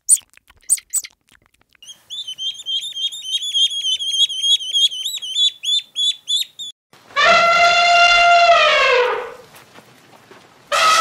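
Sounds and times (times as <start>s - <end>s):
duckling peeping: 1.8s - 6.8s.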